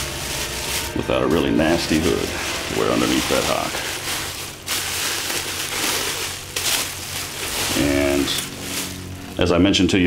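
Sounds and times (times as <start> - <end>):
plastic and paper packing crinkling: 0.0 - 9.5
latex mask handled: 0.1 - 9.4.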